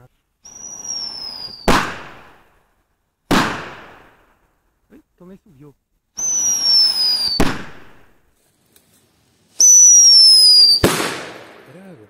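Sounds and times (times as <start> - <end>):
whistling firecracker: 0.4 - 2.5, 6.2 - 8.2, 9.6 - 11.9
firecracker bang: 0.5 - 2.5, 3.3 - 4.4, 6.2 - 8.2, 9.6 - 12.0.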